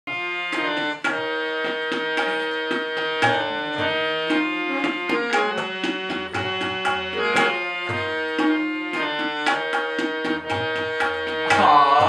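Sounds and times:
harmonium chords: 0.1 - 12.0
tabla strokes: 0.5 - 12.0.

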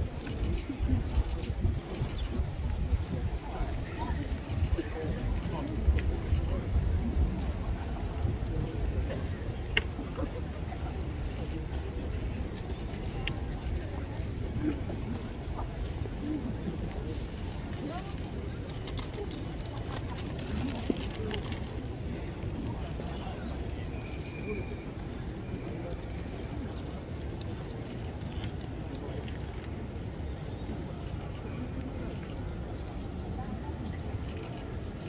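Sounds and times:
murmur of spectators: 0.0 - 35.0.

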